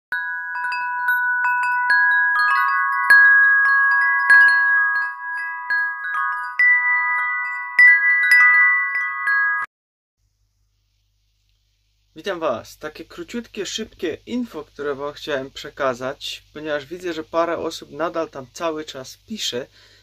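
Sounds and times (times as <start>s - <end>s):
wind chimes ringing: 0.1s - 9.7s.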